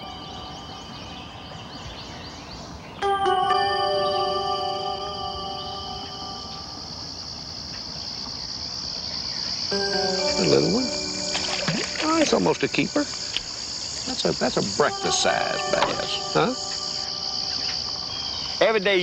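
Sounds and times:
slow ambient music chords: 0.0 - 7.7, 9.7 - 18.6
high drone of insects: 0.0 - 19.0.

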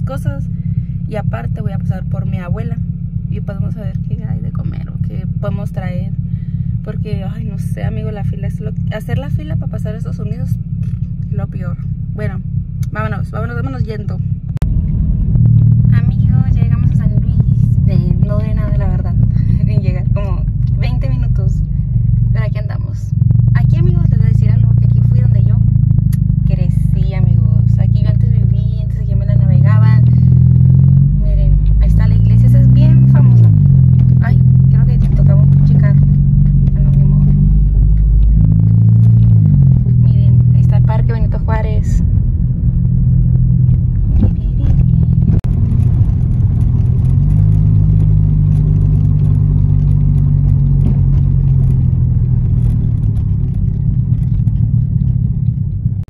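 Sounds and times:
car engine: 0.0 - 56.0
road noise inside car: 0.0 - 56.0.

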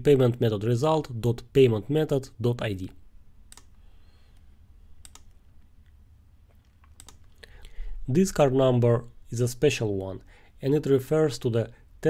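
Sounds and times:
keyboard keys clicking: 6.5 - 7.4.

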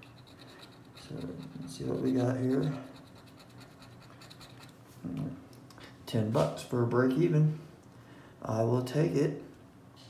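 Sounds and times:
scratch-off ticket scraping: 0.0 - 4.7.

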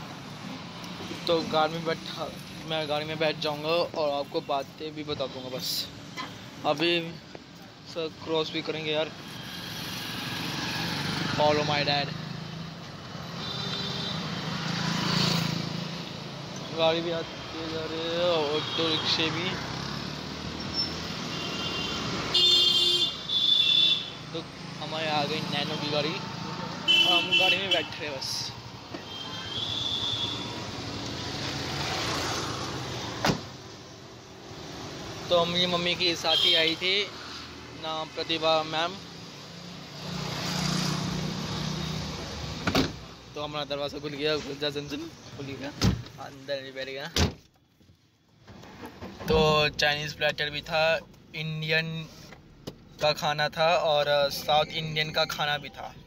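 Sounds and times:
road noise: 0.0 - 56.0
street traffic engines: 0.0 - 56.0.

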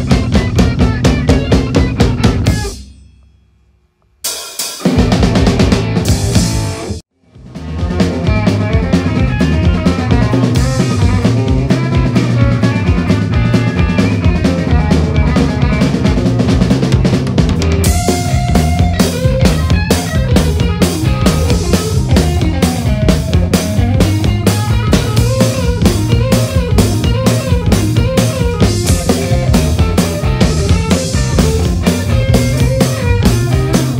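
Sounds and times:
electric guitar: 0.0 - 2.8, 4.8 - 33.9
cymbals: 0.0 - 6.8
drum kit: 0.0 - 33.9.

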